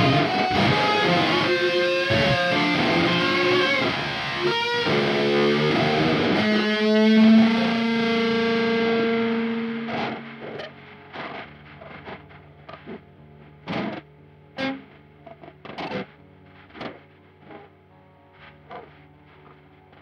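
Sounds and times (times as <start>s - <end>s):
plucked guitar notes: 0.0s - 20.0s
slow doom guitar music: 0.0s - 20.0s.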